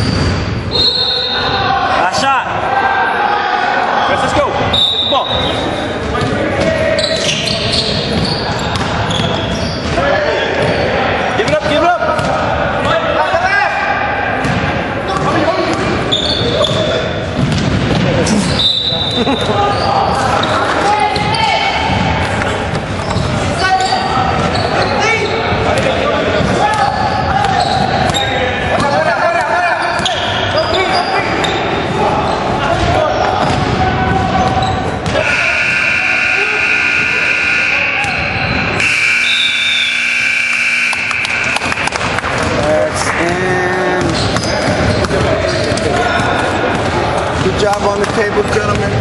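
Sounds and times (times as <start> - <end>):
players calling out: 0.0 - 49.0
scoreboard buzzer: 35.2 - 42.1.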